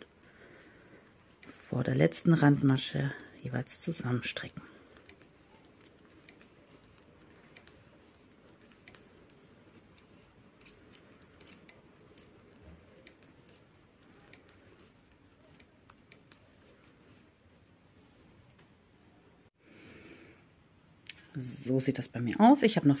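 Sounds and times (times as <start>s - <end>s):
knitting needles clicking: 0.0s - 17.3s.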